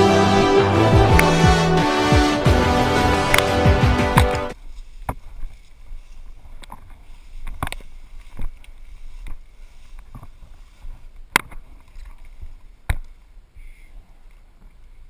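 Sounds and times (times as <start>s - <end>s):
music: 0.0s - 4.6s
footsteps through tall grass: 4.6s - 12.7s.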